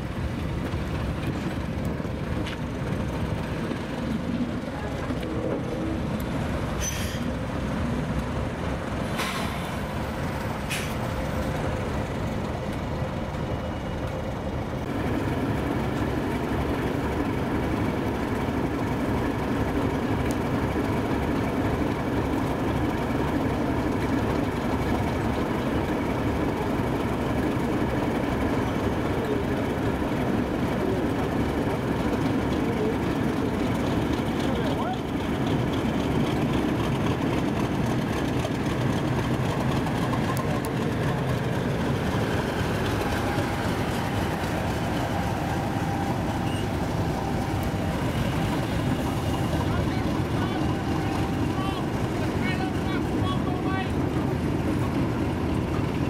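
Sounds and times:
diesel locomotive engine running: 0.0 - 56.0.

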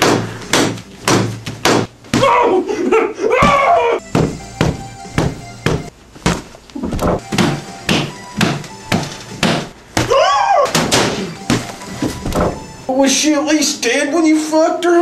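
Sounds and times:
knocking thuds: 3.4 - 12.7
music: 4.0 - 5.9, 7.2 - 9.7, 10.7 - 13.9.

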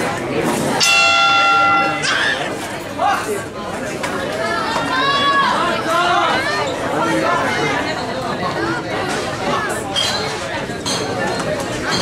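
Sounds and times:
crowd chatter: 0.0 - 12.0
boxing ring bell ringing: 0.8 - 2.6.

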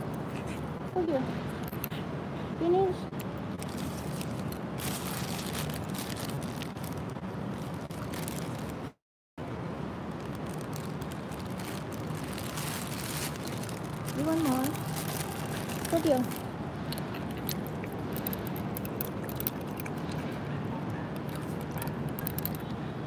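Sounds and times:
outdoor background noise: 0.0 - 23.0.

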